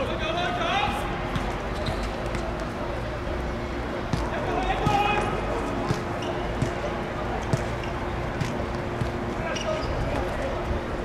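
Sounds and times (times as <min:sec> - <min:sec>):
steady hum: 0:00.0 - 0:11.0
football kicked and bouncing: 0:01.3 - 0:02.5, 0:04.1 - 0:06.9, 0:07.5 - 0:07.8, 0:08.4 - 0:09.2.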